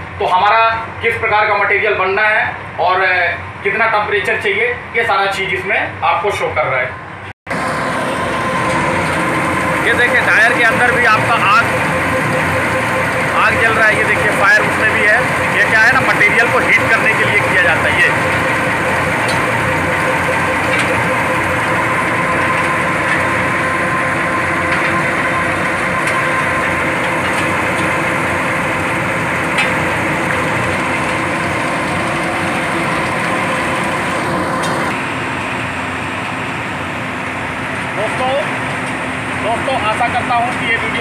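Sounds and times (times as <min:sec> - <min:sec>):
rotating drum machinery: 0:07.5 - 0:35.9
steady hum: 0:07.5 - 0:36.8.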